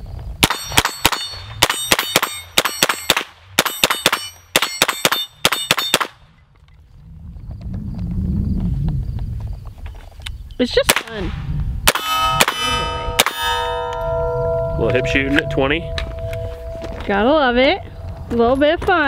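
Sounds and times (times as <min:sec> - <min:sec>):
steel targets ringing: 0:00.4 - 0:06.0, 0:11.9 - 0:18.4
pistol shots fired rapidly: 0:00.4 - 0:06.2
low rumble: 0:12.6 - 0:19.0.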